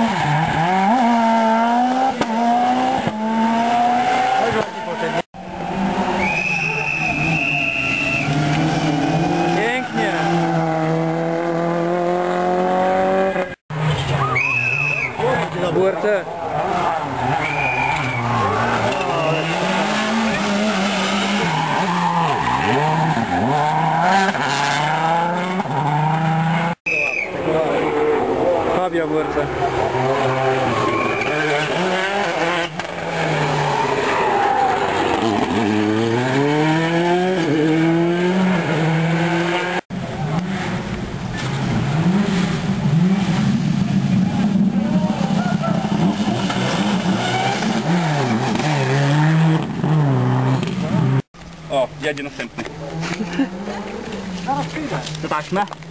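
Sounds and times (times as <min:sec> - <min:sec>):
rally cars revving past: 0:00.0 - 0:06.3, 0:07.0 - 0:13.9, 0:16.4 - 0:26.8, 0:27.6 - 0:51.3.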